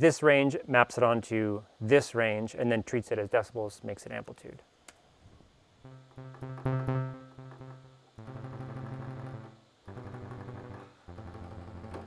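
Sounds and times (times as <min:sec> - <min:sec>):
buzzy low synth notes: 0:05.8 - 0:12.0.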